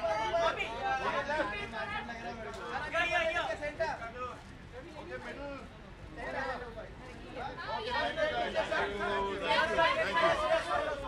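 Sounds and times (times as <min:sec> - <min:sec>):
indistinct background chatter: 0:00.0 - 0:11.0.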